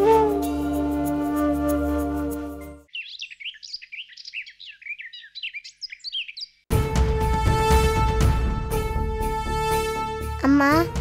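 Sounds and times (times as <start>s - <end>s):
birds chirping: 2.6s - 6.7s
loud music: 6.7s - 11.0s.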